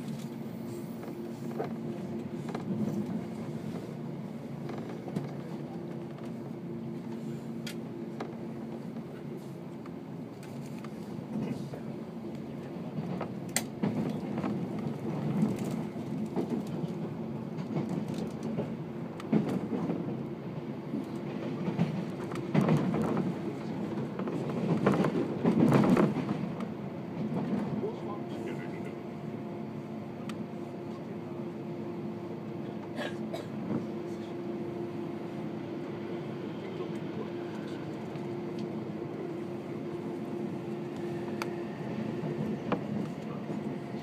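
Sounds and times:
train interior low hum: 0.0 - 44.0.

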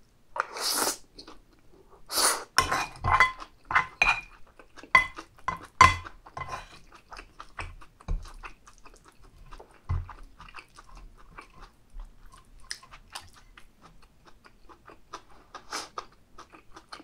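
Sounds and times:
utensils clinking in a bowl: 2.6 - 6.7.

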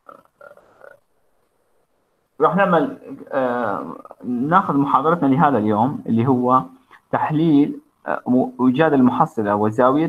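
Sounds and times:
man making wordless vocal sounds: 2.4 - 8.6.

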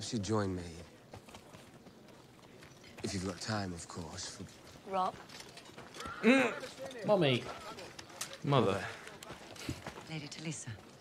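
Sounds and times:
horse hooves clip-clopping: 0.0 - 11.0.

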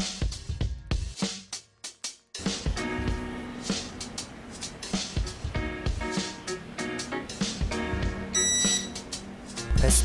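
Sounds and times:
background music: 0.0 - 10.0
short high electronic beep: 8.4 - 9.0.

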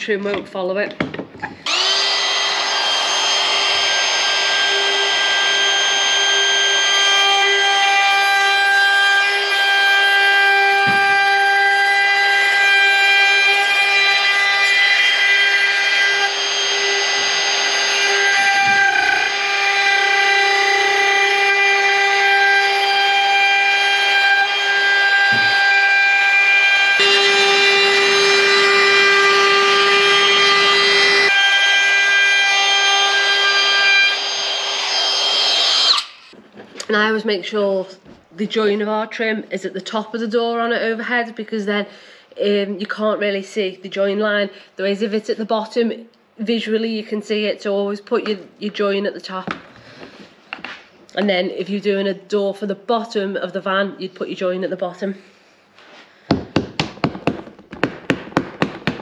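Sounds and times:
router cutting wood whining: 1.6 - 36.4.

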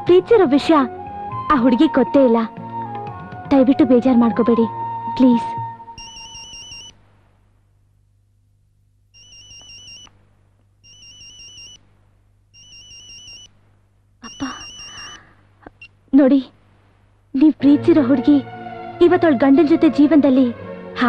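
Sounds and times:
mobile phone ringing: 6.0 - 7.0, 9.2 - 10.2, 10.8 - 11.8, 12.6 - 13.5, 14.2 - 15.3.

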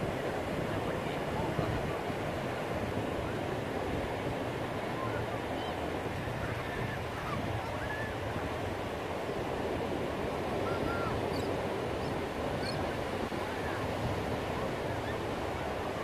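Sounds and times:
ocean surf breaking on sand: 0.0 - 16.0.

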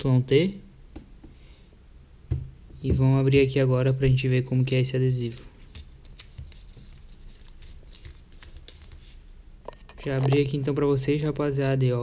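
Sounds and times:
envelope rustling: 5.3 - 9.3
paper crinkles: 5.3 - 9.3.

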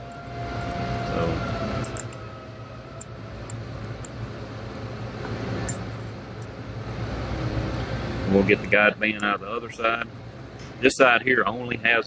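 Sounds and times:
steady low hum: 0.0 - 12.0
metal pick clicking and scraping: 1.8 - 2.2.

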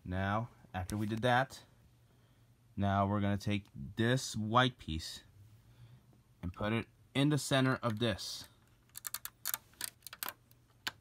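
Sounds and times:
plastic bricks clicking together: 8.8 - 11.0.

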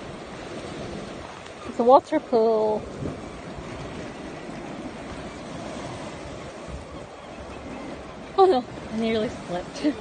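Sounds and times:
sea surf washing over rocks: 0.0 - 10.0.

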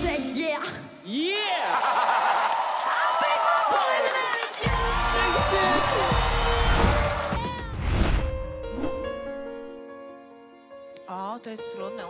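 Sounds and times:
voices cheering and shouting: 1.1 - 7.8.

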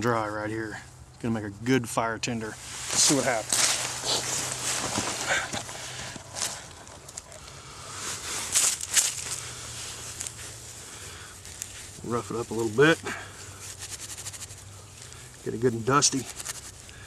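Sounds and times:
jacket fabric rustling: 2.6 - 15.2
dry leaves rustling and crunching: 2.6 - 17.0.

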